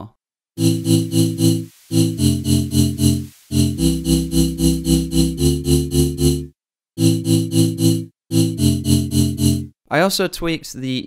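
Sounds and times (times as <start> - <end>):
pulsing synth chords: 0.6 - 9.7.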